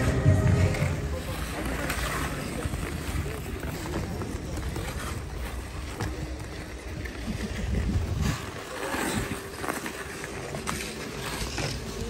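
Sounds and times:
crowd voices: 0.0 - 12.0
skates on ice: 0.0 - 12.0.

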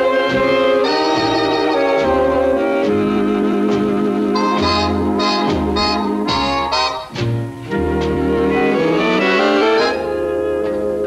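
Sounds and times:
swing big band playing: 0.0 - 11.0.

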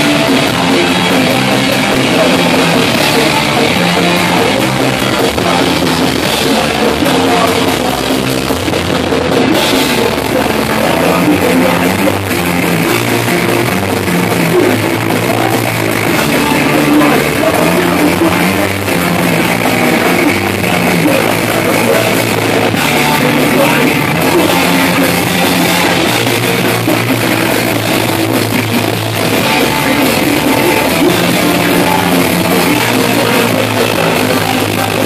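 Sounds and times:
drums and cymbals: 0.0 - 35.0
electric bass line: 0.0 - 35.0
punk rock band playing live: 0.0 - 35.0.

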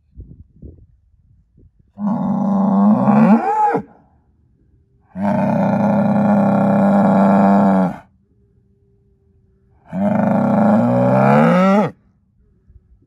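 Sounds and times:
bull bellowing: 2.0 - 4.0, 5.1 - 8.1, 9.8 - 12.0.

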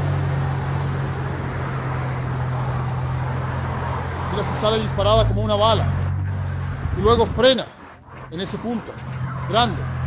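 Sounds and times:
car engine low drone: 0.0 - 10.0.

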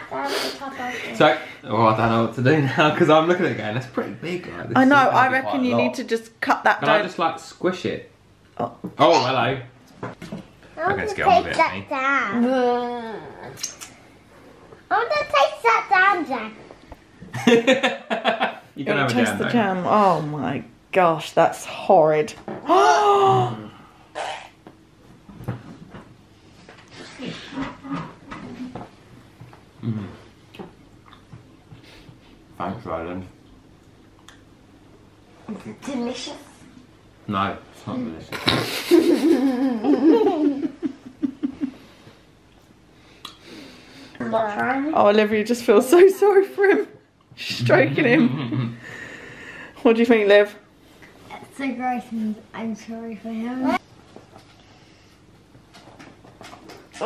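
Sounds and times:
wet mouth clicks: 13.6 - 14.0
man chewing food: 26.7 - 32.2.

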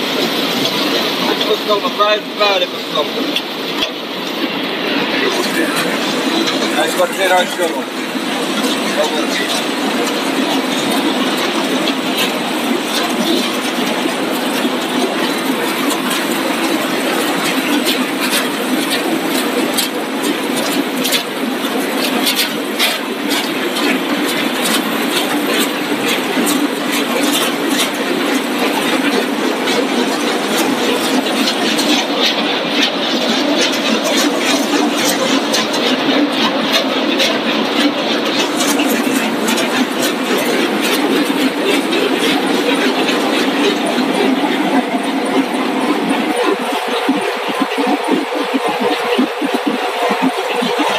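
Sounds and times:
conveyor machinery hum: 0.0 - 50.9.

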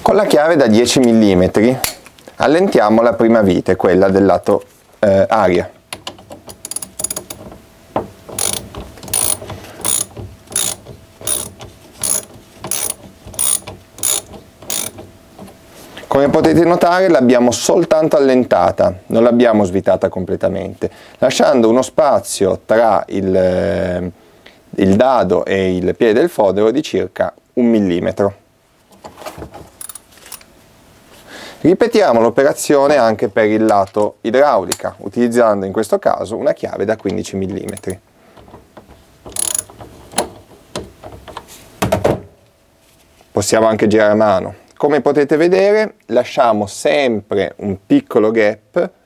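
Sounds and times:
ratchet wrench clicking: 6.5 - 7.4, 8.4 - 15.0, 29.8 - 30.4, 39.3 - 39.7.

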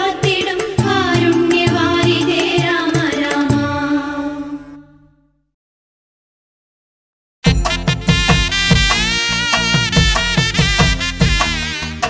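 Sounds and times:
steady drum beat: 0.0 - 3.8, 7.4 - 11.7
person singing: 0.0 - 4.8.

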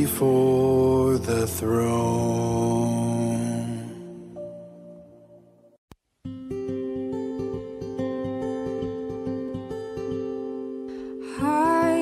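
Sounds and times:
person singing worship song: 0.0 - 4.4.

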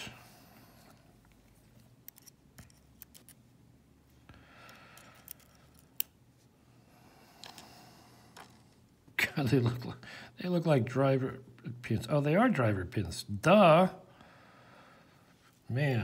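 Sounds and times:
small metal clicks: 1.8 - 3.4, 4.7 - 6.2
tweezers scraping in a lock: 2.0 - 3.4.

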